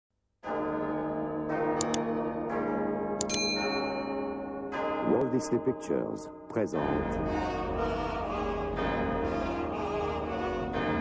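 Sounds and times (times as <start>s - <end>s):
large church bells tolling: 0.4s - 9.3s.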